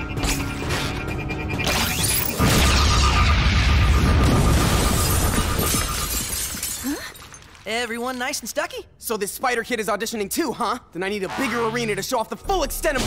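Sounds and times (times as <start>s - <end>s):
music: 0.0s - 3.4s
cartoon sound bomb blast: 1.7s - 5.1s.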